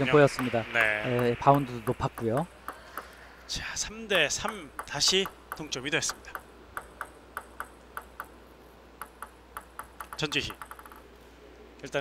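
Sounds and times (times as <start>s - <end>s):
table tennis ball bouncing: 0.0s - 3.2s, 4.3s - 8.4s, 9.0s - 11.1s.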